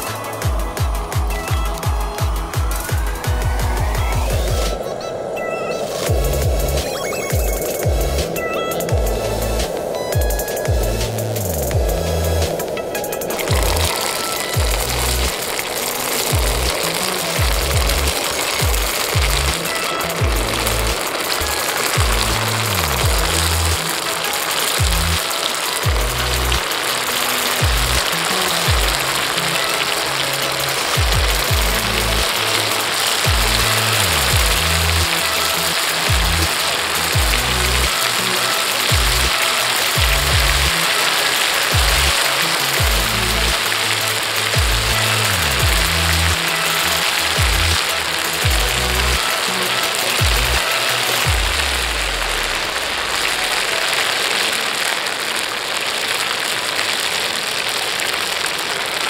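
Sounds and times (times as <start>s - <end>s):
music with deep bass line: 0.0s - 4.7s, 6.1s - 12.7s, 13.5s - 14.0s, 14.6s - 15.4s, 16.3s - 16.8s, 17.4s - 23.8s, 24.5s - 25.2s, 25.8s - 26.8s, 27.6s - 29.9s, 30.6s - 32.6s, 33.2s - 40.9s, 41.7s - 52.4s
oil sizzling in a pan: 0.0s - 59.0s.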